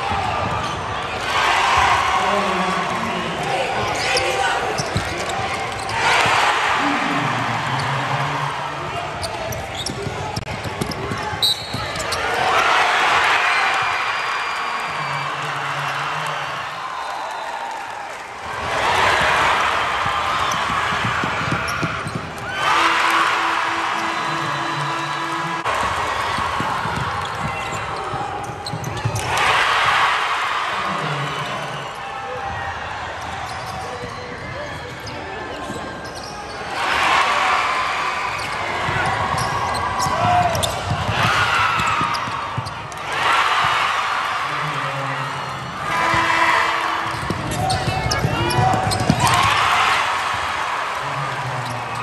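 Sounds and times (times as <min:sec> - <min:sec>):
crowd cheering and shouting: 0:00.0 - 0:52.0
basketball bouncing on court: 0:04.8 - 0:05.9, 0:09.2 - 0:12.2, 0:19.0 - 0:22.4, 0:25.7 - 0:29.4, 0:38.4 - 0:43.8, 0:47.0 - 0:49.6.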